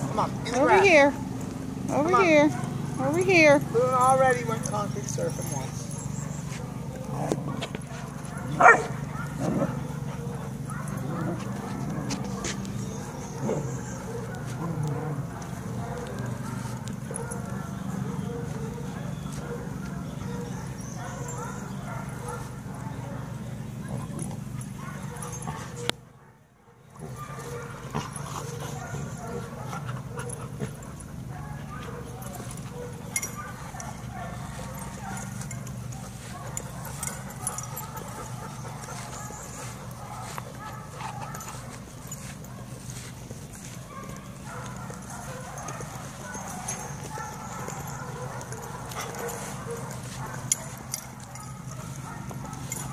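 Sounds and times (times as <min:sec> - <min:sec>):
steady low hum: 0:00.0 - 0:52.9
dogs vocalizing while playing: 0:05.4 - 0:26.0, 0:26.9 - 0:52.9.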